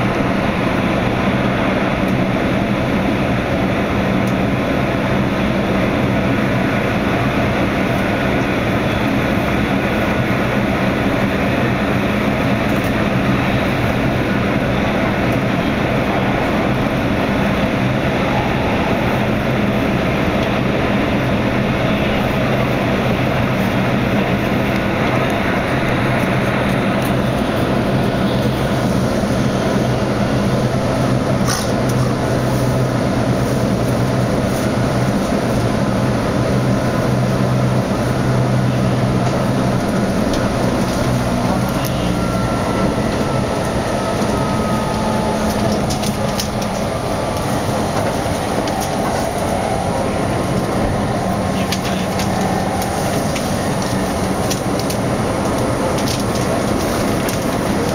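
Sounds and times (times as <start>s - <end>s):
low motor hum: 0.0s - 57.9s
train wheel and rail noise: 0.0s - 57.9s
faint rising whine: 13.1s - 31.3s.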